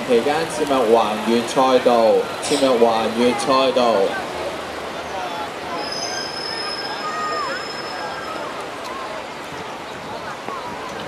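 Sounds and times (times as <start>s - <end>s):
bicycle brakes squealing: 5.7s - 8.5s.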